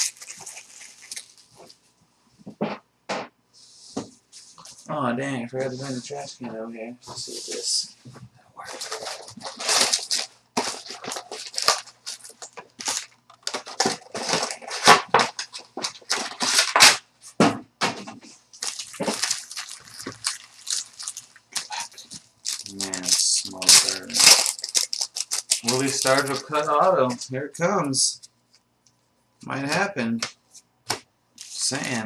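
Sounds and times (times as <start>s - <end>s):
plastic wrapping tearing and crinkling: 0.0s - 1.8s, 8.6s - 17.0s, 18.5s - 27.2s.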